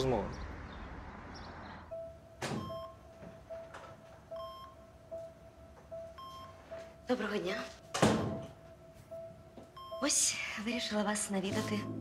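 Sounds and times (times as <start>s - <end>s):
patient monitor beeping: 1.9s - 12.0s.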